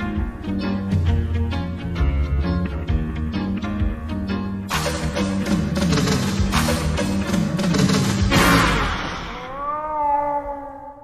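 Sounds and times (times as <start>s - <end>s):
slowed reverberant cat meow: 8.7s - 11.0s.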